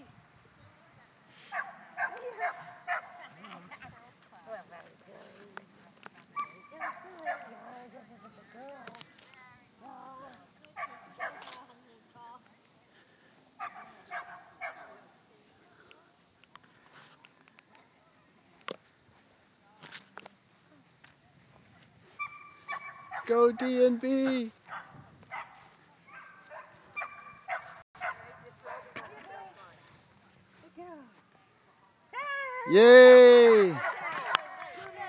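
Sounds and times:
dog yipping: 0:06.4 - 0:07.4, 0:22.2 - 0:23.3, 0:24.7 - 0:28.3.

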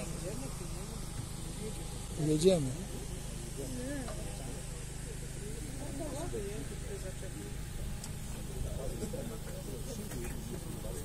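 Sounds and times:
boat engine humming: 0:00.0 - 0:11.0
quiet talk among passengers: 0:00.0 - 0:11.0.

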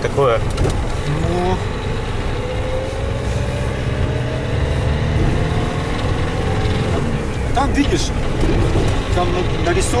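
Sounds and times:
diesel engine rumble: 0:00.0 - 0:10.0
road noise: 0:00.0 - 0:10.0.

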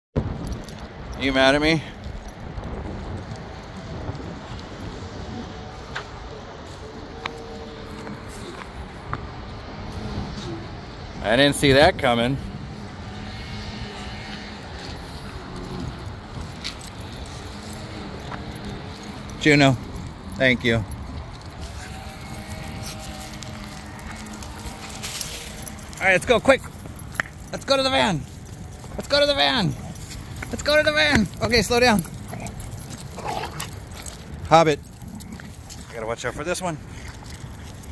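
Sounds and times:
low outdoor rumble: 0:00.2 - 0:37.9
dog claws and tags clicking: 0:13.1 - 0:37.9.

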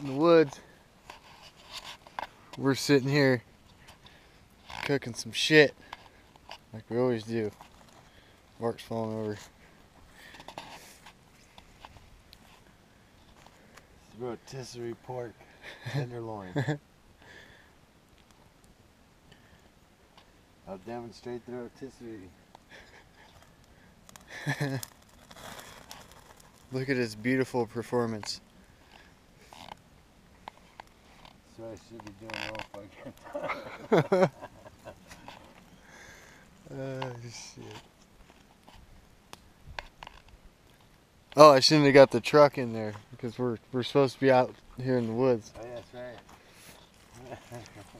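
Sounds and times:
campfire crackling: 0:00.0 - 0:47.9
low hiss: 0:00.0 - 0:47.9.

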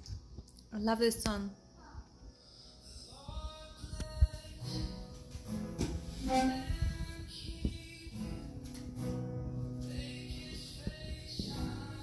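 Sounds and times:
acoustic guitar chords strummed: 0:02.9 - 0:12.0.

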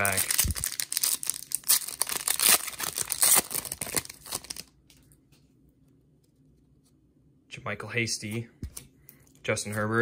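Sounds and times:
foil wrapper tearing: 0:00.0 - 0:04.7.

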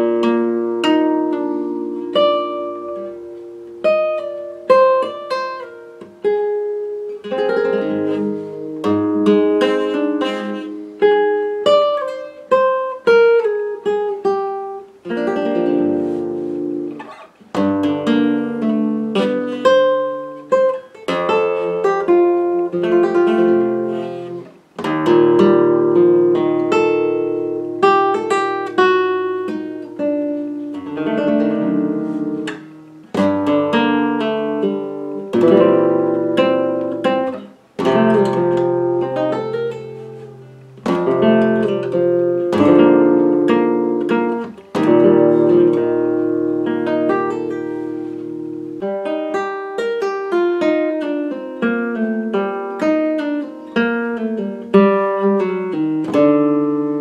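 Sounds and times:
flamenco guitar playing: 0:00.0 - 0:57.0.

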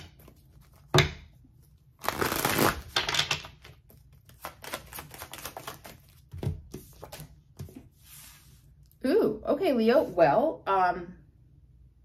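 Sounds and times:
cards being shuffled: 0:02.0 - 0:08.4.

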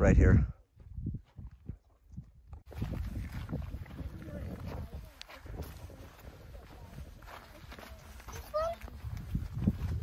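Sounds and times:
footsteps on rock: 0:01.3 - 0:10.0.

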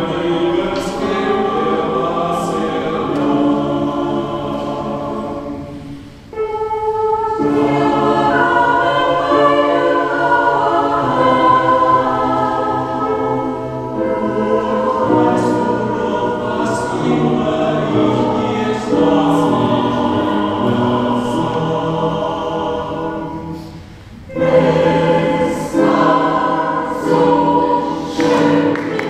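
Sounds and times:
mixed choir singing in harmony: 0:00.0 - 0:29.0.

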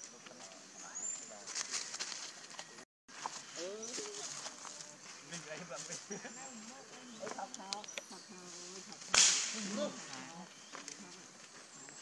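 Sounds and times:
sharp crack: 0:09.1 - 0:09.8.

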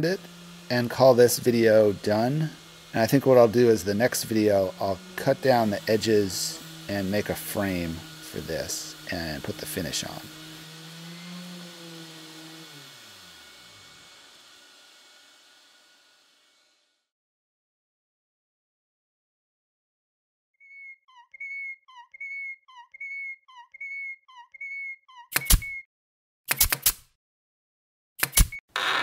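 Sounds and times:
motor-like hum: 0:00.0 - 0:17.0.

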